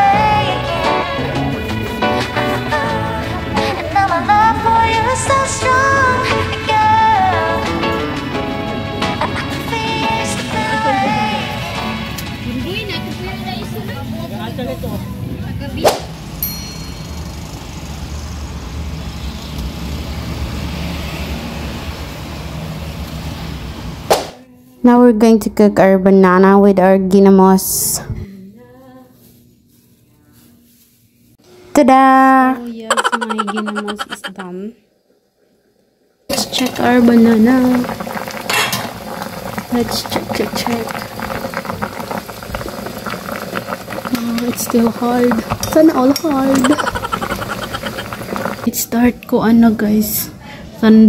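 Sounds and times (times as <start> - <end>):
brief high ding: 16.4 - 17.3
water boiling in a pot: 34.5 - 49.0.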